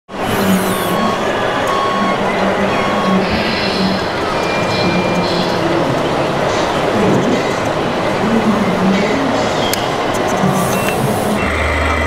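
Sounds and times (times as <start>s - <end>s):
busy hall noise: 0.1s - 12.0s.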